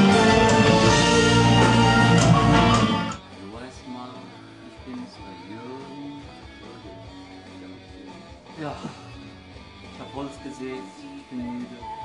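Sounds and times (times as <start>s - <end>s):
loud full-band music: 0.0s - 3.2s
guitar played quietly: 0.0s - 12.0s.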